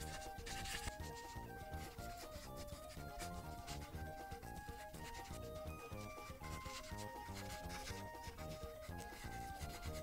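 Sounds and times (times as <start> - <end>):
light background music: 0.0 - 10.0
marker tip rubbing on paper: 0.0 - 10.0.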